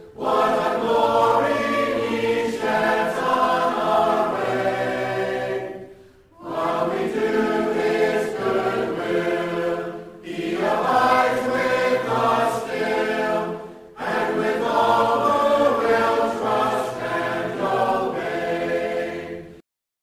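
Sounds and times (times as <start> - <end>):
congregation singing a hymn: 0.0 - 19.6.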